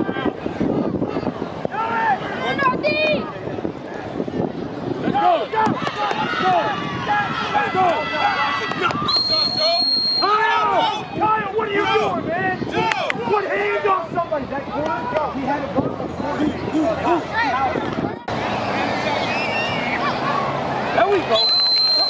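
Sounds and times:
spectators shouting and cheering: 0.0s - 22.0s
referee's whistle blast: 9.0s - 10.4s, 21.4s - 22.0s.

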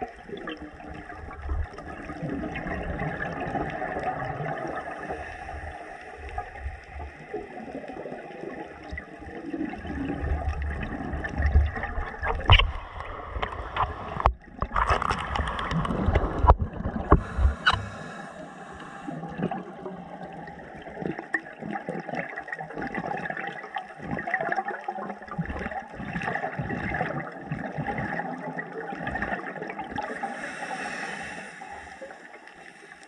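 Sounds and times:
underwater exhaled bubbles gurgling: 0.0s - 33.0s
high hiss: 30.2s - 33.0s.

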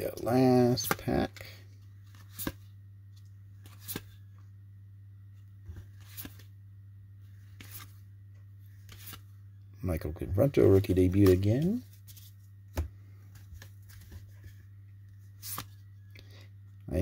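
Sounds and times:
steady low hum: 0.0s - 17.0s
cards sliding and snapping: 2.1s - 2.6s, 3.6s - 4.2s, 5.8s - 6.5s, 7.5s - 8.0s, 8.8s - 9.2s, 15.4s - 15.8s.

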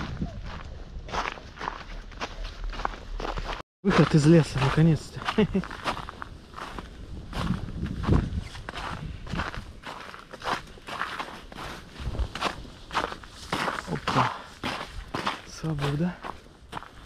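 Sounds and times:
footsteps in snow: 0.0s - 17.0s.

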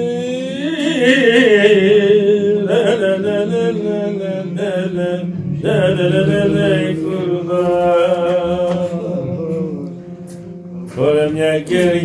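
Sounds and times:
man singing: 0.0s - 10.2s, 10.8s - 12.0s.

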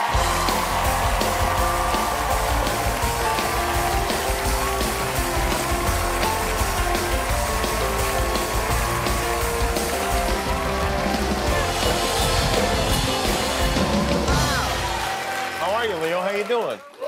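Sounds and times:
band playing upbeat music: 0.0s - 16.7s
audience applause: 0.0s - 17.0s.

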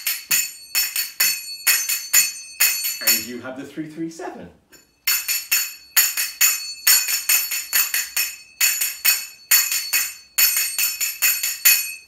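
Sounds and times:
finger cymbals striking: 0.0s - 3.4s, 4.7s - 12.0s.

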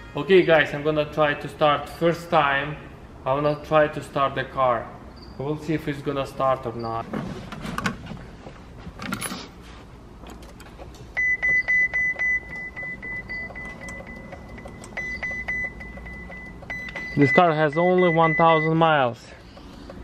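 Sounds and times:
dashboard warning chime beeping: 11.1s - 19.4s.

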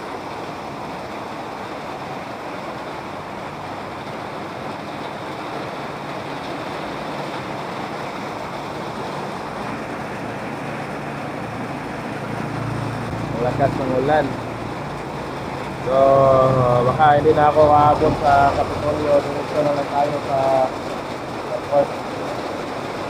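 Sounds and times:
heavy rain on a metal roof: 0.0s - 23.0s.

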